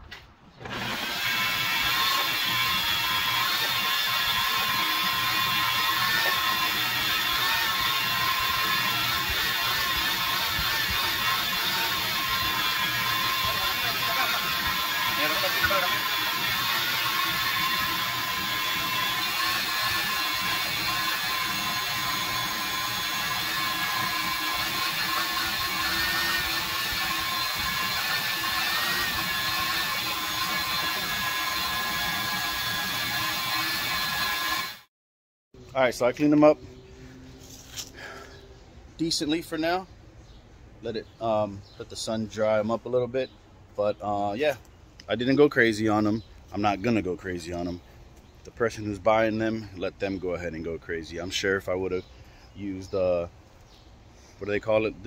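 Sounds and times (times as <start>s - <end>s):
shop vacuum motor whine: 0.6s - 34.9s.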